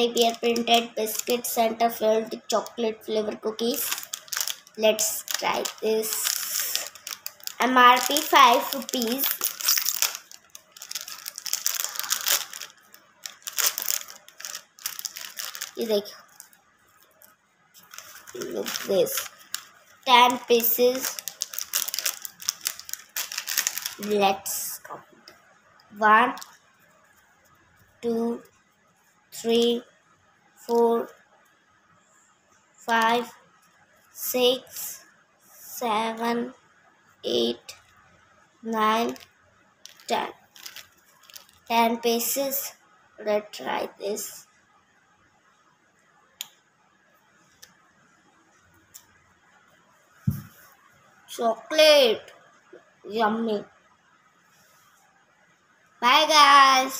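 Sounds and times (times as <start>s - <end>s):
plastic wrapper crinkling: 0.0s - 2.8s, 3.4s - 24.6s, 26.3s - 26.6s, 39.0s - 41.7s
crunching crisp biscuit: 3.8s - 15.8s, 21.0s - 24.0s.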